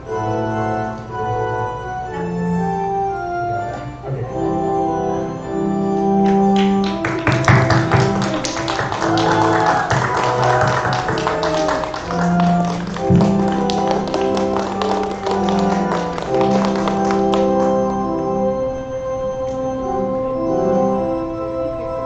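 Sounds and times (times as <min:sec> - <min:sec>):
organ playing slow chords: 0:00.0 - 0:22.0
people clapping: 0:06.2 - 0:18.1.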